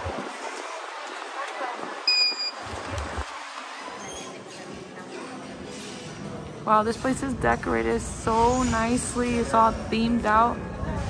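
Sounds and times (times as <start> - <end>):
high-pitched electronic beep: 2.1 - 2.6.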